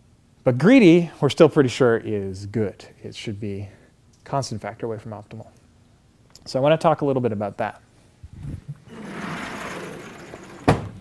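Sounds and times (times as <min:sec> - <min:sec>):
sliding panel rumbling: 0:08.8 - 0:11.0.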